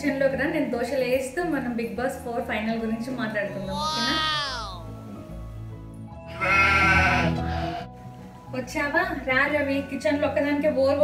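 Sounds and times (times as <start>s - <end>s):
background music with held notes: 0.0s - 11.0s
goat bleat: 6.3s - 7.9s.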